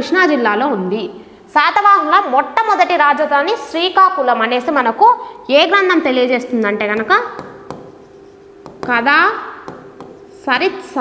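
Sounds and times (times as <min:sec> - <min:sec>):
pen tip tapping: 0:07.0 - 0:09.0, 0:09.6 - 0:10.3
pen scratching on board: 0:07.3 - 0:10.6.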